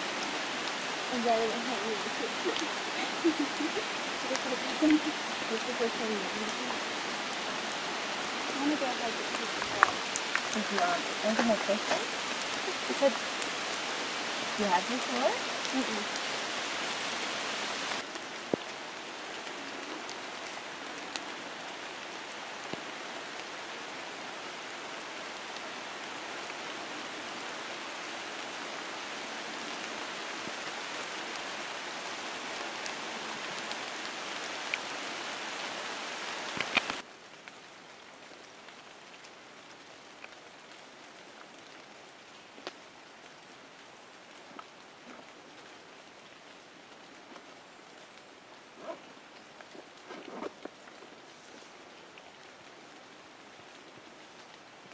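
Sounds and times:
rain on foliage: 0:00.0 - 0:54.9.

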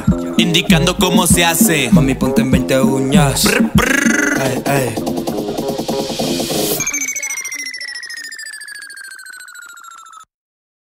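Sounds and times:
pulsing high electronic tone: 0:03.4 - 0:04.6, 0:05.5 - 0:10.3.

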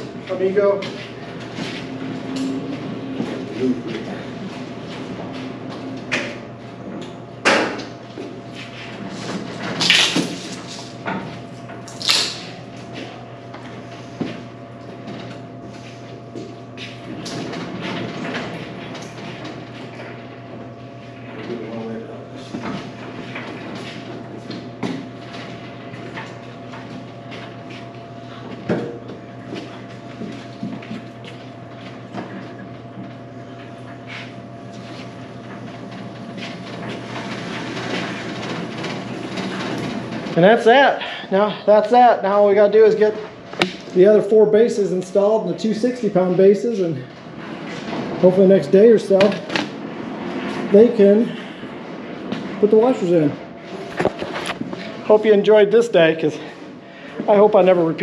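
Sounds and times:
steady hum: 0:00.0 - 0:58.0.

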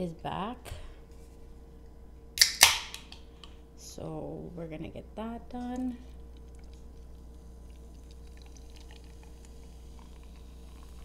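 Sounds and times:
drink can cracked open: 0:02.4 - 0:03.2.

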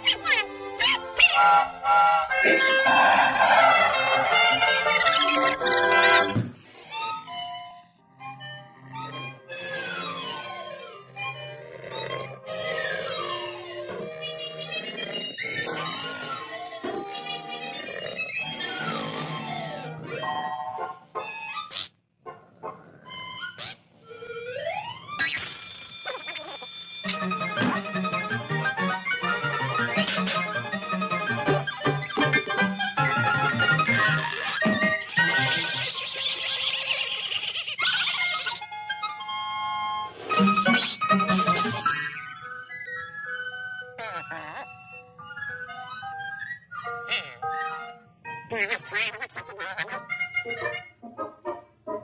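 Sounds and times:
high-pitched garbled cartoon vocalising: 0:00.0 - 0:01.5, 0:02.3 - 0:06.3, 0:11.8 - 0:20.3, 0:25.2 - 0:39.2, 0:44.0 - 0:44.9, 0:48.5 - 0:51.0
cartoon music notes: 0:00.0 - 0:06.4, 0:23.2 - 0:36.0, 0:38.0 - 0:52.0.

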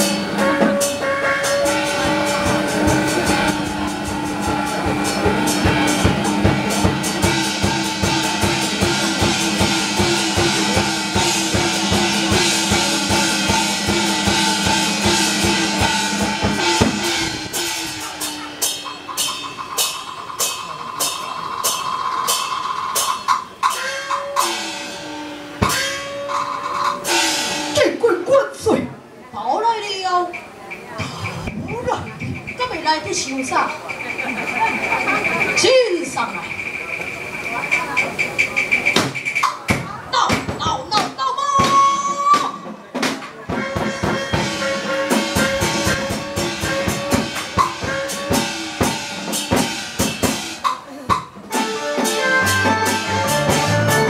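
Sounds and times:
cymbals crashing: 0:00.0 - 0:28.1, 0:30.2 - 0:54.0
held melody notes: 0:00.0 - 0:28.6, 0:29.6 - 0:54.0
regular drum beat: 0:00.0 - 0:54.0.

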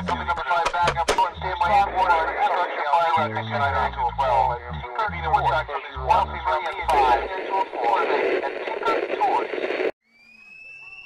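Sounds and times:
sharp clicks: 0:00.0 - 0:01.4
tinny radio-like voices: 0:00.0 - 0:09.9.

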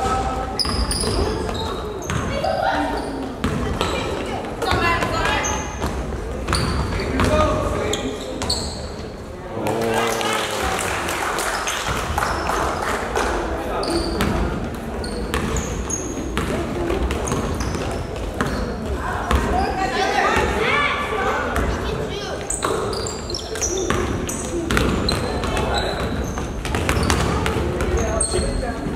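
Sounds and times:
shoe squeaks: 0:00.6 - 0:04.1, 0:05.2 - 0:05.8, 0:06.5 - 0:07.1, 0:07.8 - 0:09.2, 0:13.8 - 0:14.3, 0:15.0 - 0:16.4, 0:17.2 - 0:19.8, 0:22.4 - 0:28.9
basketball bouncing on wooden floor: 0:24.7 - 0:28.0.

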